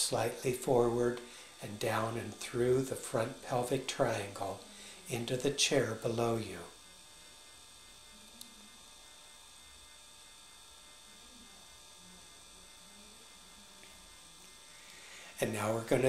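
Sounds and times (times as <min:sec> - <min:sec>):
faint electrical hum: 0:00.0 - 0:16.0.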